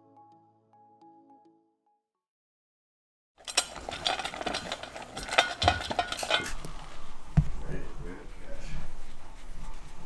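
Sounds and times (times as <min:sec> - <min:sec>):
dog eating from metal bowl: 0:03.4 - 0:06.7.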